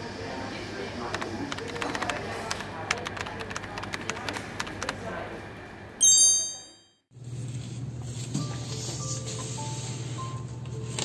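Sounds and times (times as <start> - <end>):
high-pitched chime: 6.0 - 7.0.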